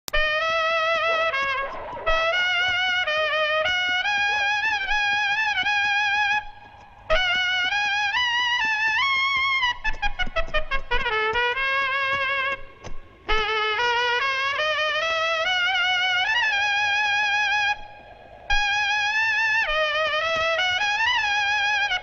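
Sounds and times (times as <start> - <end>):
solo trumpet melody: 0.1 - 17.9, 18.5 - 22.0.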